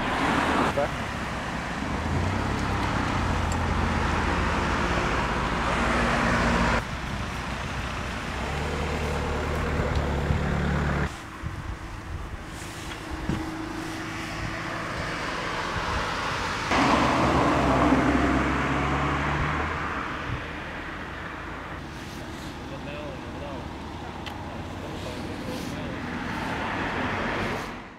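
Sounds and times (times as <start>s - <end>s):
car passing close by: 0.0s - 6.8s, 12.6s - 22.8s, 24.9s - 27.9s
steady road traffic hum: 0.0s - 27.9s.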